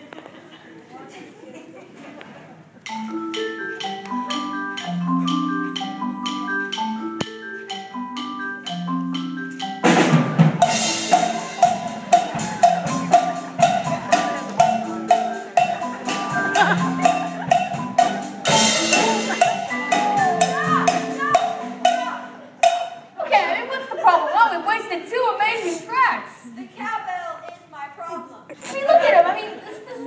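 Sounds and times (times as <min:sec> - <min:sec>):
marimbas playing low notes: 0:02.8 - 0:23.2
cowbell struck on a beat: 0:02.9 - 0:23.1
drum kit: 0:02.9 - 0:23.1.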